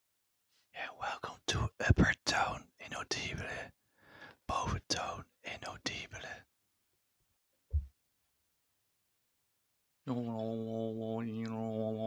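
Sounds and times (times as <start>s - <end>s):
man whispering: 0.8s - 3.8s, 4.4s - 6.5s.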